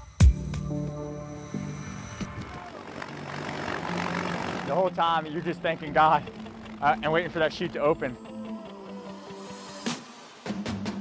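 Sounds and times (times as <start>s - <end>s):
aircraft engine drone: 0.6s - 10.0s.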